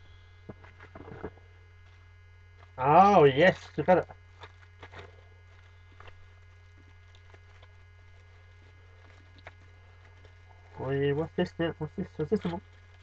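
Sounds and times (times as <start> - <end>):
low mains hum: 0.0 - 13.0
small items handled: 3.4 - 10.8.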